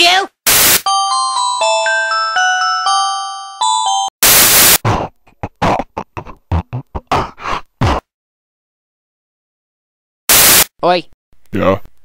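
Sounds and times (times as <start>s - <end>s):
burst of white noise: 0.5s - 0.8s, 4.2s - 4.8s, 10.3s - 10.7s.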